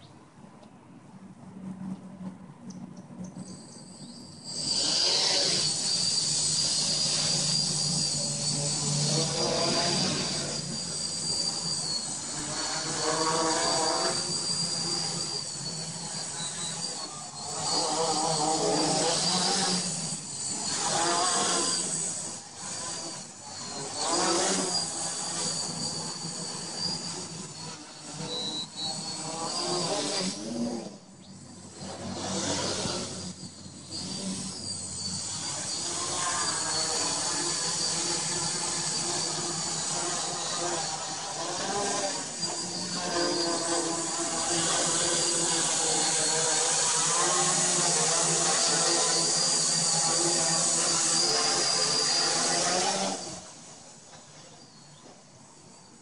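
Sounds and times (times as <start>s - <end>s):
quadcopter motors whining: 0.0s - 56.0s.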